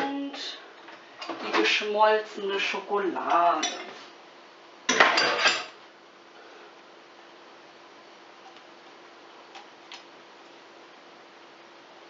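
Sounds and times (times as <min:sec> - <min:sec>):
pot and utensil clattering: 0:04.9 - 0:05.8.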